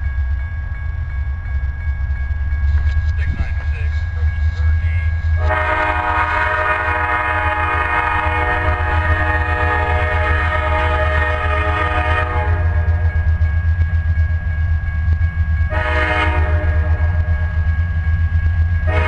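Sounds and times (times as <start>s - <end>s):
train rumbling: 0.0s - 19.0s
locomotive air horn blast: 5.4s - 12.9s, 15.7s - 17.3s.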